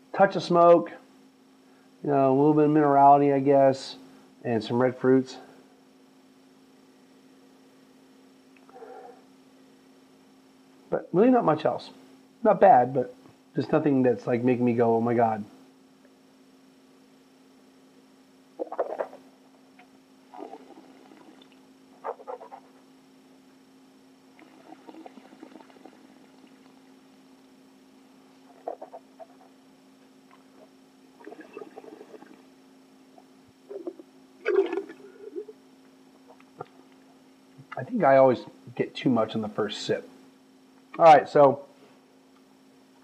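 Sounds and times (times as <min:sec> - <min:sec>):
faint electrical hum: 0:00.0 - 0:43.0
slurping and swishing wine: 0:24.4 - 0:26.7, 0:31.2 - 0:32.4.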